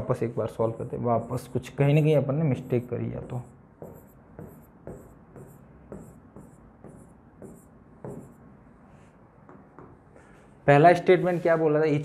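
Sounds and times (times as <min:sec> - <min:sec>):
pen scratching on whiteboard: 0:02.6 - 0:08.4.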